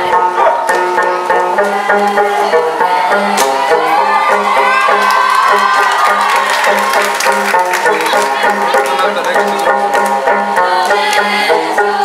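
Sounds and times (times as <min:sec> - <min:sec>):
plucked strings over a beat: 0:00.0 - 0:12.0
crowd voices and cheering: 0:00.3 - 0:11.9.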